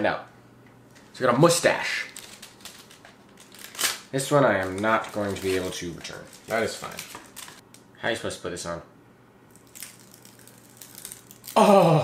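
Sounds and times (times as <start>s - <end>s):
paper rustling and crinkling: 2.0s - 7.6s.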